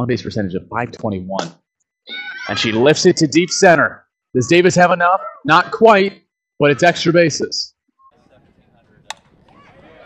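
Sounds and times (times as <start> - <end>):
faint ballfield ambience: 8.0 - 10.0
bat striking ball crack: 9.0 - 9.8.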